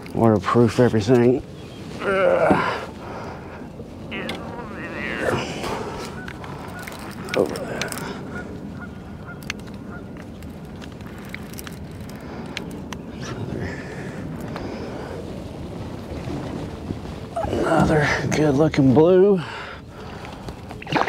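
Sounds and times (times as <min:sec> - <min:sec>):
water: 0:00.0 - 0:21.0
wind: 0:00.0 - 0:21.0
geese honking: 0:04.2 - 0:07.4, 0:08.2 - 0:10.2.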